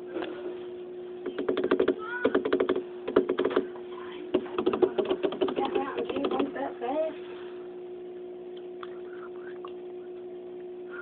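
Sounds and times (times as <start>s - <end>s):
aquarium equipment hum: 0.0s - 11.0s.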